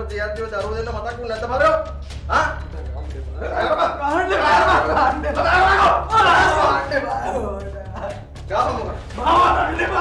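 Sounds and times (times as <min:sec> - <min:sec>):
man yelling: 0:04.2 - 0:06.9, 0:09.2 - 0:10.0.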